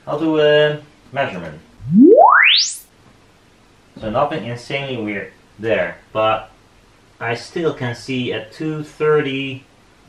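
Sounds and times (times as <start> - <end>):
rising sine sweep tone: 1.8 - 2.8.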